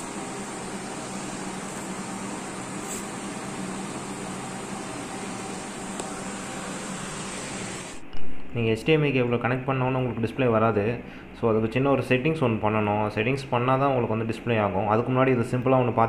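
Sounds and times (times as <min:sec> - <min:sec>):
room hiss: 0:00.0 - 0:14.8.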